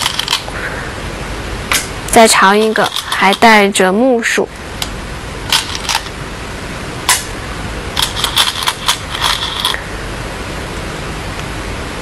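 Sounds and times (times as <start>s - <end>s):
steady hiss: 0.0s - 12.0s
stones clicking in wooden bowl: 2.5s - 3.5s.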